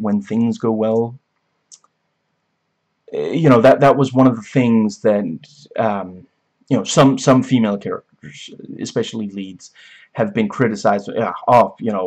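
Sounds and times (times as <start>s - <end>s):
man speaking: 0.0s - 1.2s, 3.1s - 12.0s.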